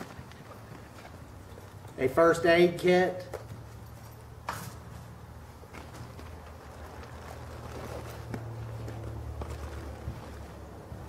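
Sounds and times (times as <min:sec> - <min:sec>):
rummaging through backpack: 0:05.6 - 0:11.0.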